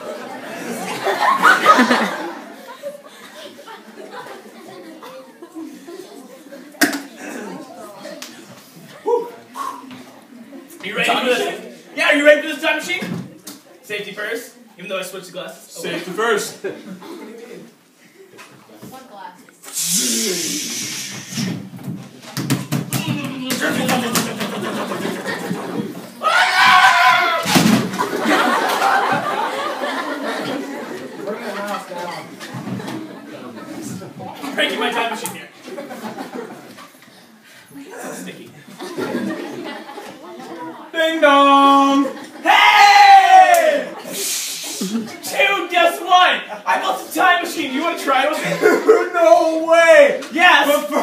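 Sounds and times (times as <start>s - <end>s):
audience murmuring and chuckling: 0.0s - 12.0s, 15.9s - 18.8s, 23.1s - 26.2s, 27.3s - 42.7s, 43.8s - 45.4s
wordless voices: 13.6s - 21.5s
short hiss: 19.6s - 21.6s, 44.1s - 44.9s.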